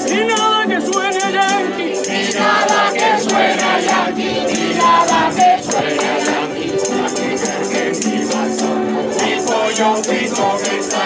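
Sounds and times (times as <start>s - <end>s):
group of voices singing: 0.0s - 11.0s
strummed acoustic guitars: 0.0s - 11.0s.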